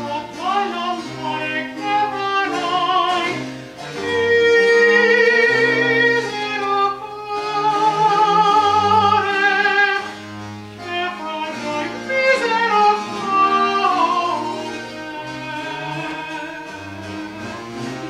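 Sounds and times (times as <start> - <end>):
man singing opera with vibrato: 0.0 - 10.2, 10.8 - 18.0
bowed strings ensemble: 0.0 - 18.0.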